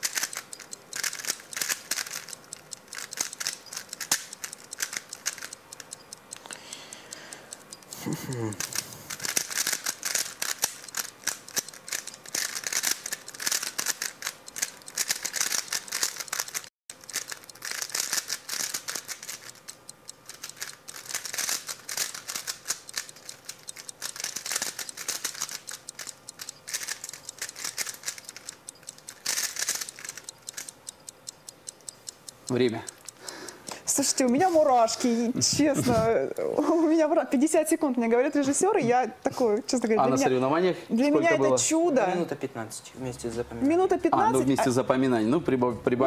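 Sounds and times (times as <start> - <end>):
puzzle cube plastic clicks: 0.0 - 34.5.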